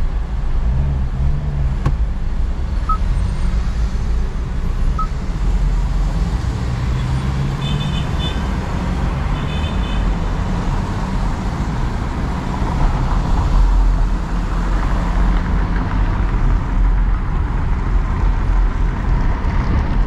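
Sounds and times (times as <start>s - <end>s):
engine and road rumble: 0.0s - 20.0s
high-pitched beeps: 5.0s - 5.2s.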